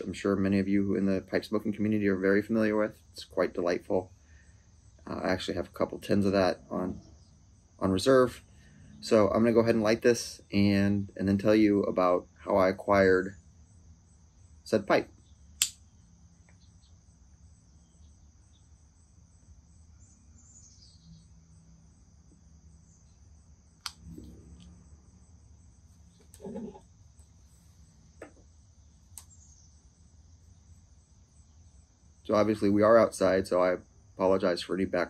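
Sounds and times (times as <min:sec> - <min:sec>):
insects chirring: 0:00.0 - 0:35.0
lighter clicks: 0:15.6 - 0:15.8.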